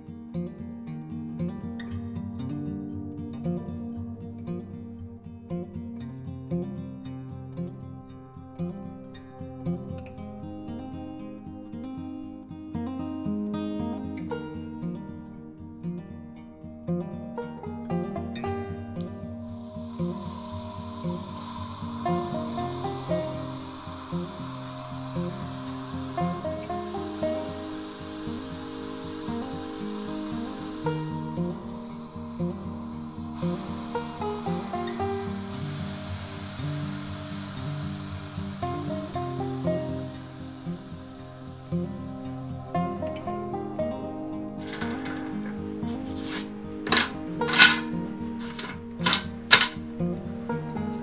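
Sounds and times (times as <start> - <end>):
acoustic guitar music: 0.0 - 51.0
compressed air hissing: 19.0 - 45.5, 46.2 - 49.8
faint high whistle: 19.0 - 49.6.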